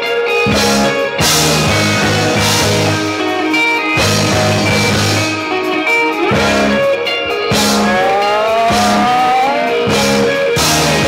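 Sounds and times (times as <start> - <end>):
bass guitar: 0.0 - 11.0
drum kit: 0.0 - 11.0
electric guitar: 0.0 - 11.0
guitar note sliding upward: 0.0 - 11.0.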